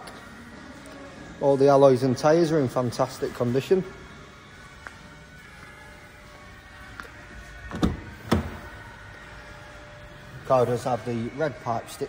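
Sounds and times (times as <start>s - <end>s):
faint background music: 0.0s - 12.0s
car door latch clunks: 7.7s - 8.7s.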